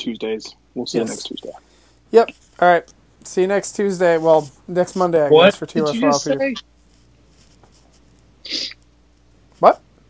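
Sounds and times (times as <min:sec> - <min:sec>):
man's voice: 0:00.0 - 0:01.5, 0:03.7 - 0:06.6
low steady hum: 0:00.0 - 0:10.0.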